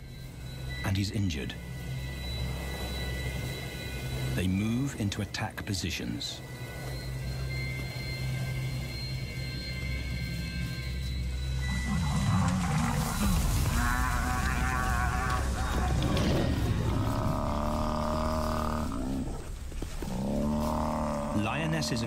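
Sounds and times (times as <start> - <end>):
rush of charging animals: 11.6 - 22.0
lions snarling: 11.7 - 22.0.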